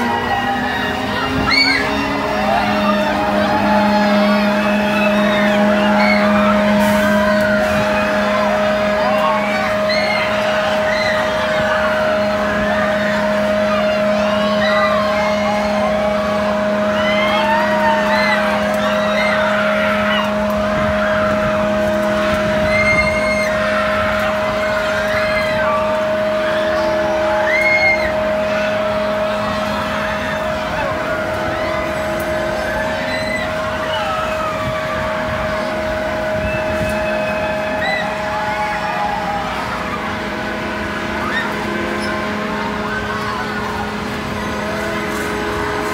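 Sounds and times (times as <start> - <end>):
ride machinery humming: 0.0 - 45.9
riders screaming and shouting: 0.0 - 45.9.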